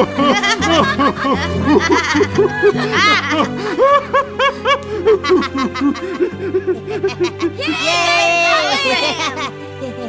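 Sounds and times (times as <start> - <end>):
background music with held chords: 0.0 - 10.0
person laughing: 0.0 - 10.0.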